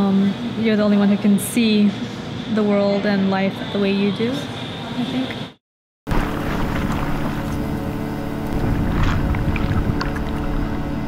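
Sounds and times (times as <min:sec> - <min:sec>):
bubbling water rushing: 0:06.1 - 0:11.0
droning music: 0:06.1 - 0:11.0.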